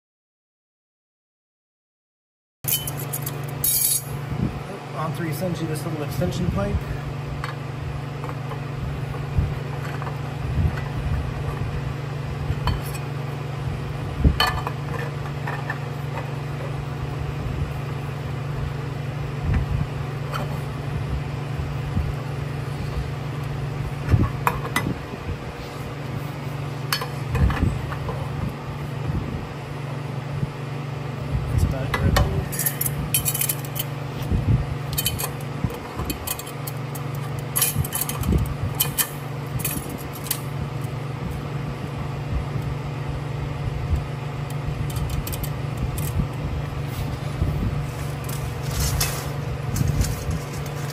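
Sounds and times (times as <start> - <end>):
steady low hum: 2.6 - 50.9
metal pipes clinking together: 2.7 - 4.2.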